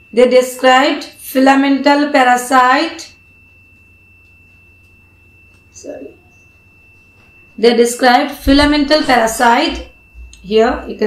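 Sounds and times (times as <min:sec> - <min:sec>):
faint high-pitched electrical whine: 0:00.0 - 0:11.0
low electrical hum: 0:00.0 - 0:11.0.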